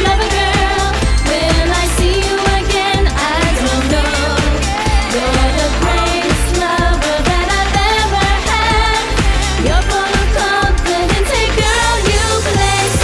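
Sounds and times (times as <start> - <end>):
drum beat and bass: 0.0 - 13.0
woman singing pop song: 0.0 - 13.0.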